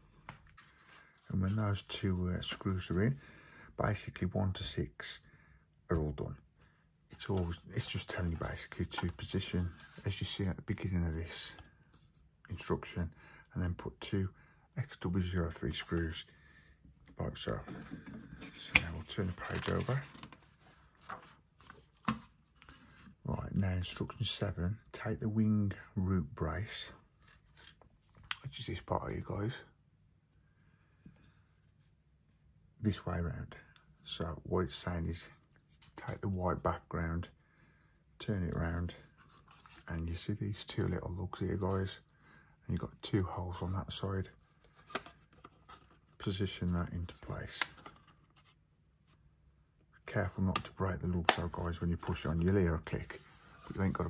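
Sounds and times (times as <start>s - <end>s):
magazine page rustling: 7.1s - 10.5s, 17.4s - 23.0s.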